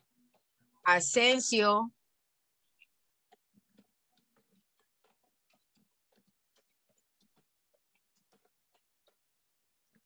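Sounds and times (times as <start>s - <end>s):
faint irregular clicks: 2.6s - 10.0s.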